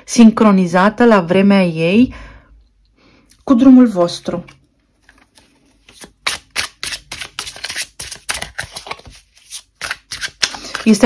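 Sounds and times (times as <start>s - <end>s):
cards being shuffled: 5.0s - 11.0s.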